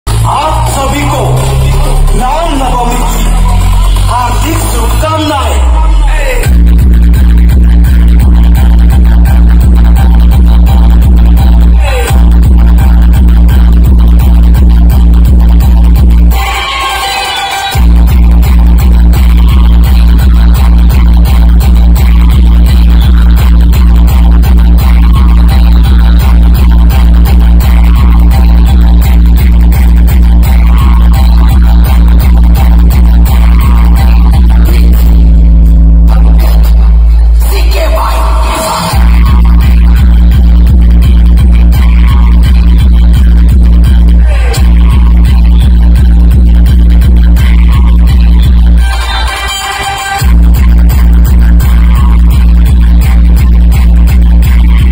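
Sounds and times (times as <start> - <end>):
electronic dance music with heavy bass: 0.0 - 54.9.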